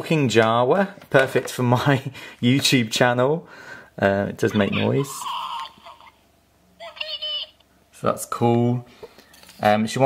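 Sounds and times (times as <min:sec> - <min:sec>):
toy speaker high-pitched chatter: 0:04.5 - 0:06.2, 0:06.8 - 0:07.6.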